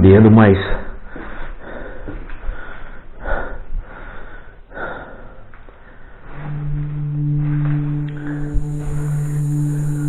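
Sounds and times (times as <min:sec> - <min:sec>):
man breathing: 0:00.7 - 0:06.7.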